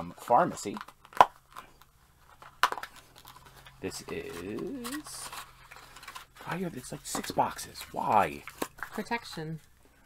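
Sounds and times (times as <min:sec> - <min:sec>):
cardboard crackling: 0:00.2 - 0:09.8.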